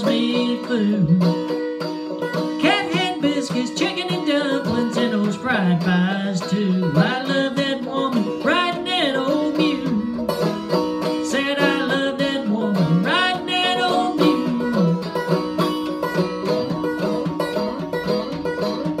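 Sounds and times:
banjo picking: 0:00.0 - 0:19.0.

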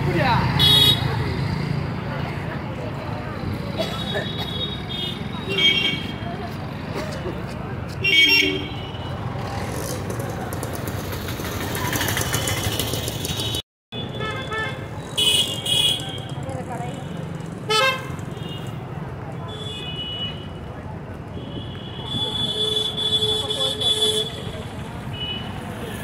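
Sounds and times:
motorcycles passing: 0:00.0 - 0:13.6, 0:14.8 - 0:19.5
street traffic rumble: 0:00.0 - 0:26.0.

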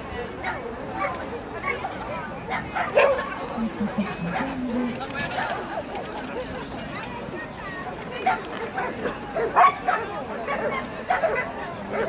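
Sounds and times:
murmur of voices: 0:00.0 - 0:12.0
dog barking: 0:02.5 - 0:03.4, 0:08.2 - 0:12.0.

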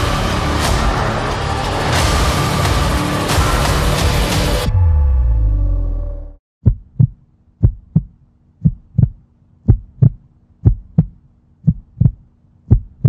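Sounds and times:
heartbeat thumps: 0:06.6 - 0:13.0.

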